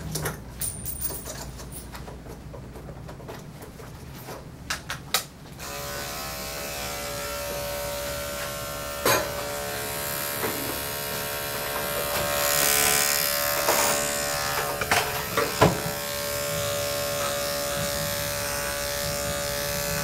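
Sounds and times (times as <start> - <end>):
electric clippers buzzing: 5.6 - 20.0.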